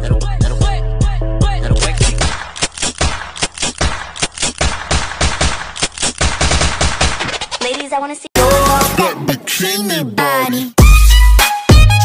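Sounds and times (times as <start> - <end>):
machine gun bursts: 2.2 - 7.7.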